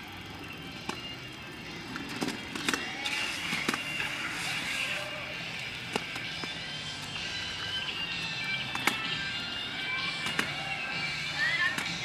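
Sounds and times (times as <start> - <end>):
background music: 0.0 - 12.0
scooter wheels rolling on concrete: 0.0 - 12.0.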